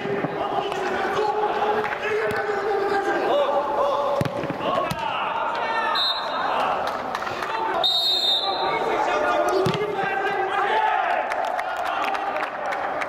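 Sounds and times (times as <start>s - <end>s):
players shouting: 0.0s - 13.0s.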